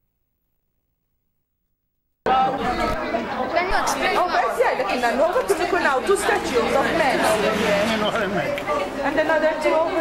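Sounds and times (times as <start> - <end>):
voices chattering: 2.3 - 10.0.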